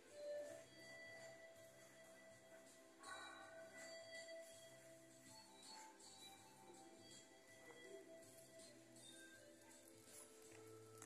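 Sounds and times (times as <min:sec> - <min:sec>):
faint ringing background music: 0:00.0 - 0:11.0.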